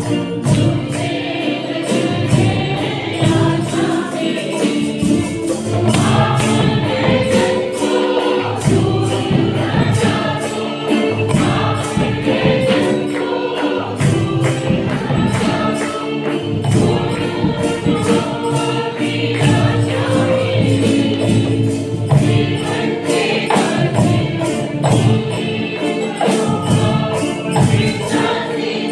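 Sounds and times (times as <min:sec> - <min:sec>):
mixed choir singing worship song: 0:00.0 - 0:28.9
steady percussion beat: 0:00.0 - 0:28.9.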